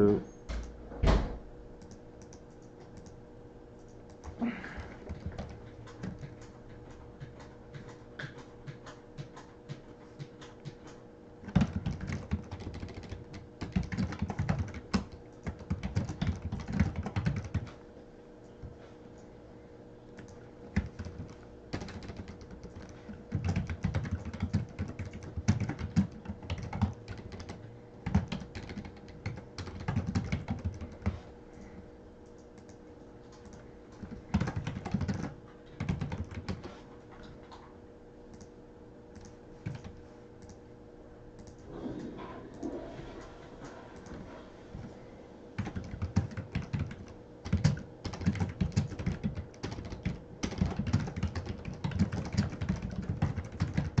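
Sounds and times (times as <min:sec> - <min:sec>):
faint steady hum: 0:00.0 - 0:54.0
computer keyboard typing: 0:01.8 - 0:03.2, 0:03.8 - 0:17.8, 0:20.2 - 0:37.3, 0:39.1 - 0:40.6, 0:45.6 - 0:54.0.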